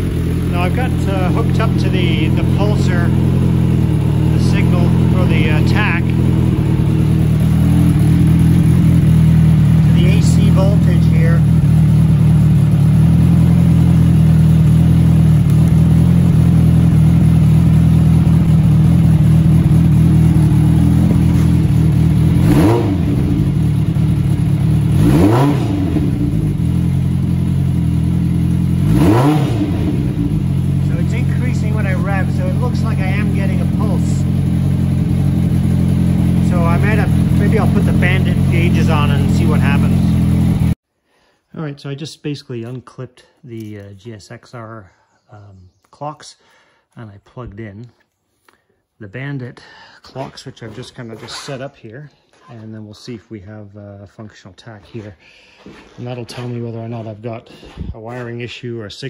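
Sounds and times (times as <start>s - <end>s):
motorcycle engine idling: 0.0s - 40.8s
motorcycle engine revving: 0.0s - 40.8s.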